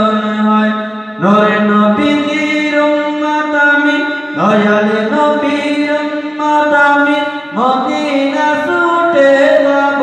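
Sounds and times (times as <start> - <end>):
man singing solo: 0.0 - 10.0.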